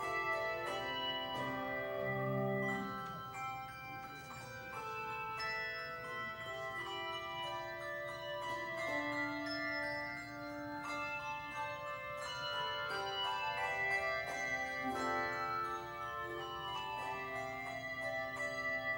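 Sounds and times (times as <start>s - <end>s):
handbell choir ringing: 0.0s - 18.9s.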